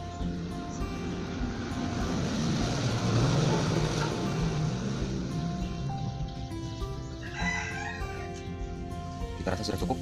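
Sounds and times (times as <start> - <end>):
motorcycle engine running: 0.0 - 7.5
background music: 0.0 - 10.0.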